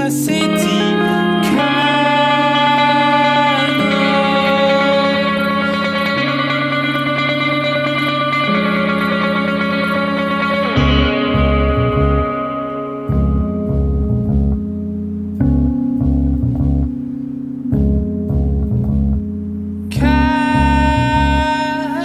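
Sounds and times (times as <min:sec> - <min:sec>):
guitar playing chords: 0:00.0 - 0:22.0
low pulsing rhythmic part: 0:00.0 - 0:22.0.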